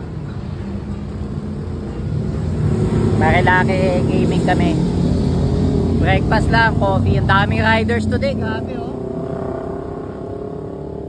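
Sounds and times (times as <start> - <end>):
motorcycles riding past: 0.7 - 11.0.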